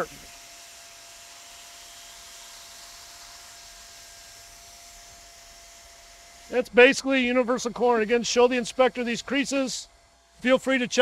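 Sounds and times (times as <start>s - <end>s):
blower whine: 0.0s - 11.0s
hot-air welder hissing: 0.0s - 11.0s.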